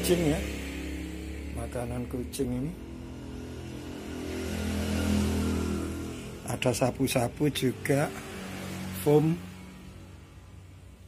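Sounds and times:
vehicle engine running: 0.0s - 11.0s.

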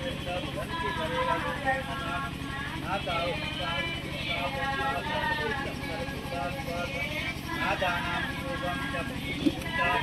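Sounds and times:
pulsing mechanical hum: 0.0s - 10.0s
voices talking: 0.0s - 10.0s.

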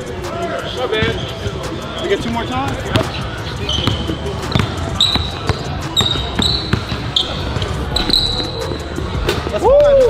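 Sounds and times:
sneakers squeaking: 0.6s - 9.5s
basketball dribbling on wooden floor: 3.7s - 7.6s.

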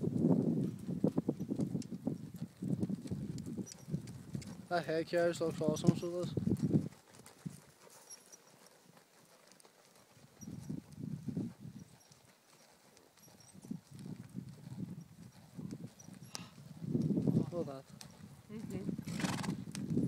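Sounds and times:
horse hoofbeats on soft sand: 0.0s - 20.0s.

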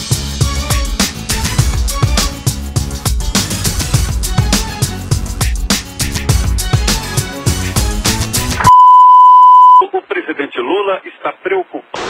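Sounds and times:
music with a beat: 0.0s - 8.7s
high-pitched test tone beep: 8.7s - 9.8s.

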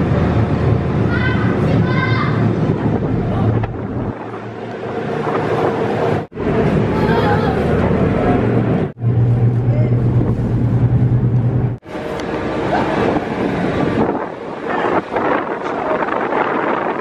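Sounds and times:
ferry engine drone: 0.0s - 17.0s
wind buffeting microphone: 0.0s - 17.0s.

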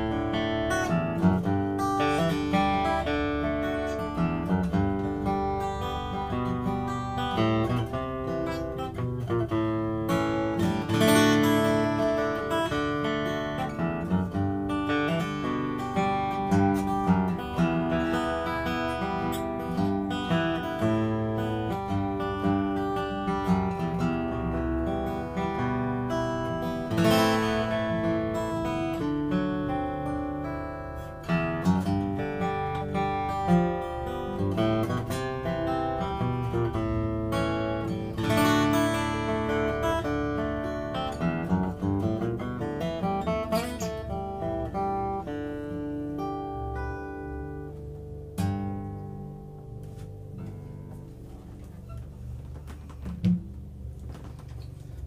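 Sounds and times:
acoustic guitar picked and strummed: 0.0s - 55.0s.

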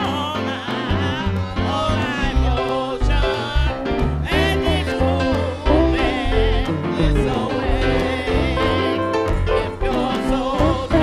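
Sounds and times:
church choir singing: 0.0s - 11.0s
electronic keyboard: 0.0s - 11.0s
low bass line: 0.9s - 11.0s.

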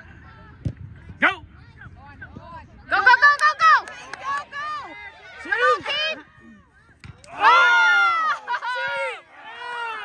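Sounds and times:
spectators shouting: 2.9s - 10.0s.

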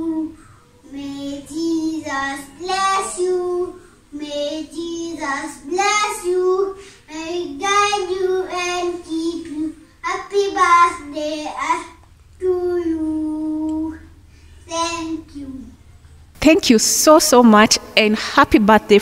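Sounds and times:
boy singing unaccompanied: 0.0s - 15.7s.

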